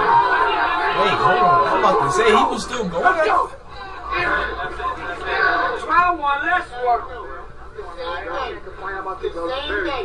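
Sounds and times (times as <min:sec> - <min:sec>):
crowd chatter: 0:00.0 - 0:10.0
men talking: 0:00.9 - 0:03.6.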